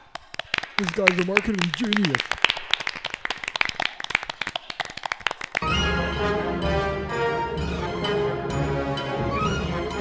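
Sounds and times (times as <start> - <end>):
group of people applauding: 0.0 - 5.8.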